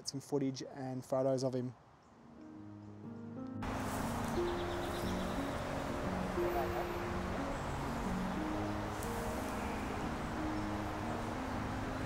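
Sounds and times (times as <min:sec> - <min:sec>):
outdoor background hiss: 0:00.0 - 0:12.0
music of sustained notes: 0:02.2 - 0:12.0.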